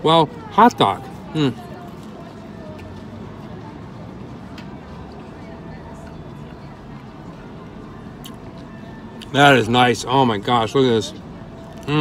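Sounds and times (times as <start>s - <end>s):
faint distant voices: 0.0s - 12.0s
street background noise: 0.0s - 12.0s.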